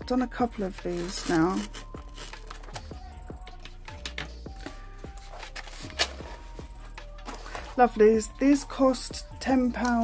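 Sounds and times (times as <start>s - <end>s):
slow background music: 0.0s - 10.0s
cardboard box being handled: 5.2s - 6.6s.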